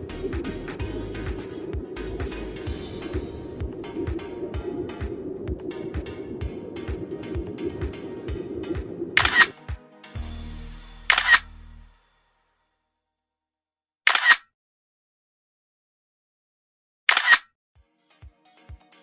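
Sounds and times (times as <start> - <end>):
background music with steady beat: 0.0 - 12.5, 17.8 - 19.0
camera shutter clicks: 9.2 - 9.6, 11.1 - 11.5, 14.1 - 14.5, 17.1 - 17.5.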